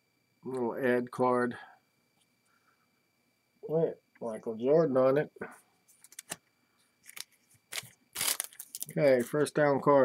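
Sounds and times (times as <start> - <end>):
foil wrapper crinkling: 7.0 - 9.3.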